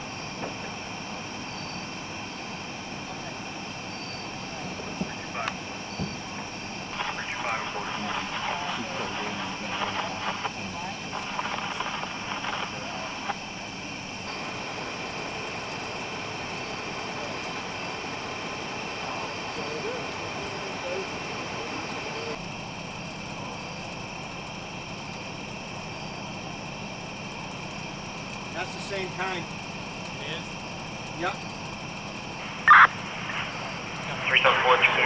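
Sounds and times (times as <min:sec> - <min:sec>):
steady background hum: 0:00.0 - 0:35.0
people talking indistinctly: 0:06.9 - 0:13.4, 0:18.9 - 0:22.4, 0:28.5 - 0:29.5, 0:30.1 - 0:30.6, 0:32.6 - 0:35.0.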